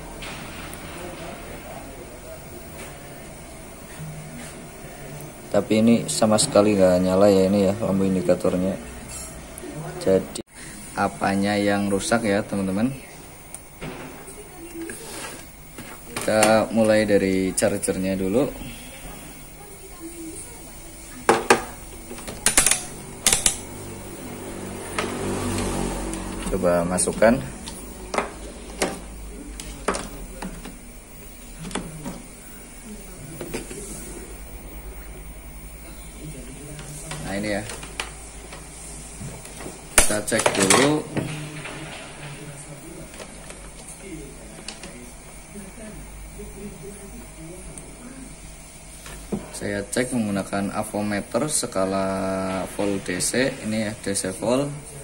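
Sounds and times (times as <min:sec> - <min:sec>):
faint voices talking: 0:00.0 - 0:55.0.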